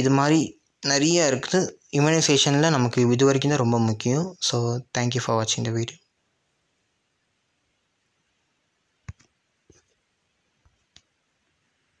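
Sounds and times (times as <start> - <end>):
fingers tapping smartphone: 9.0 - 10.0.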